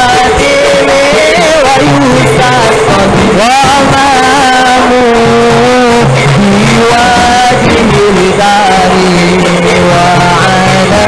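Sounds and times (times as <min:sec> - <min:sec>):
drums and bamboo percussion: 0:00.0 - 0:11.0
man singing: 0:00.0 - 0:11.0.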